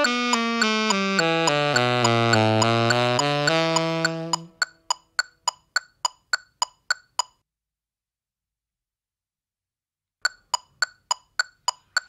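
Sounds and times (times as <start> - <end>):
electronic metronome click: 0.0 - 7.4, 10.3 - 12.0.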